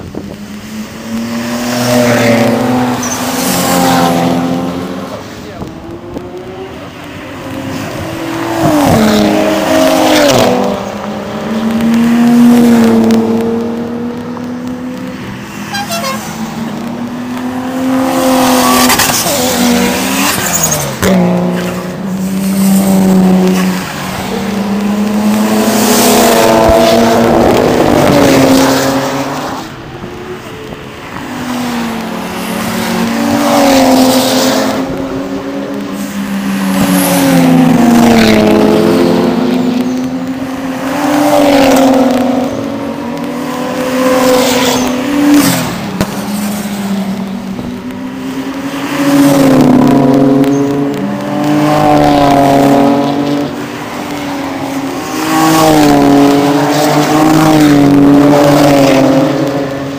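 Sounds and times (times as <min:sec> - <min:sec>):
race cars driving past: 0:00.0 - 0:59.9.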